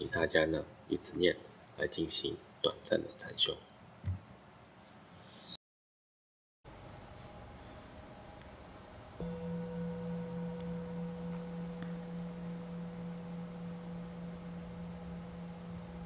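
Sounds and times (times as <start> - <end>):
singing bowl ringing: 7.4 - 16.0.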